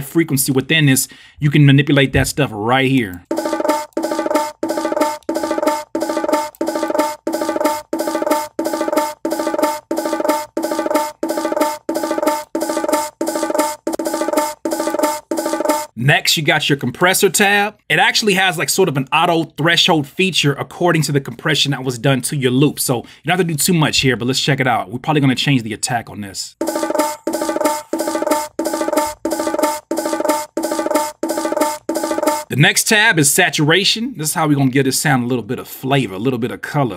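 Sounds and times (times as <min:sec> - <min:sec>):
looped bongo hits: 0:03.2 - 0:16.0, 0:26.6 - 0:32.5.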